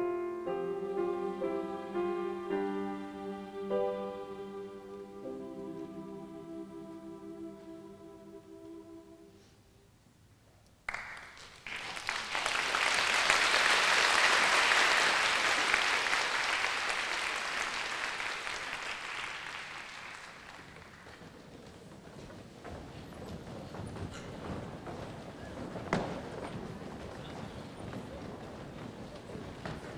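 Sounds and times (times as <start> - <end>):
audience applause: 10.9 - 21.3
footsteps and shuffling: 20.6 - 29.9.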